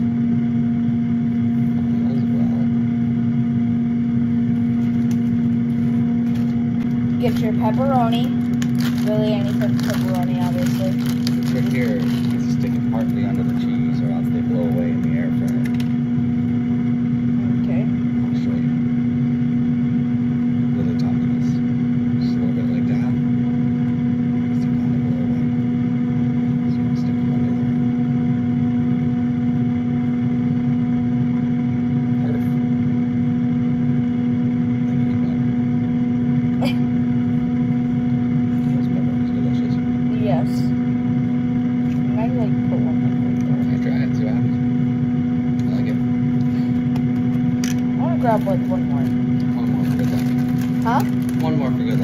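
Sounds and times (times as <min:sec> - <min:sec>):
air fryer motor hum: 0:00.0 - 0:52.0
fan rushing: 0:00.0 - 0:52.0.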